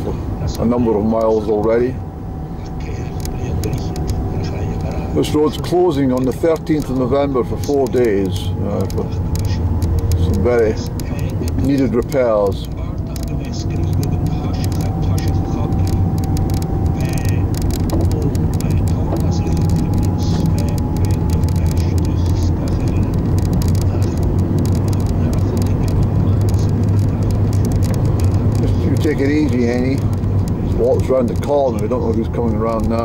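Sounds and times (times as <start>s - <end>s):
car engine and tyre drone: 0.0s - 33.0s
faint rising whine: 0.0s - 33.0s.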